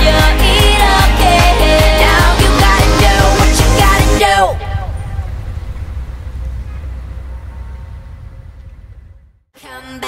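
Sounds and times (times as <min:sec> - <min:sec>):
low rumbling ambience: 0:00.0 - 0:09.5.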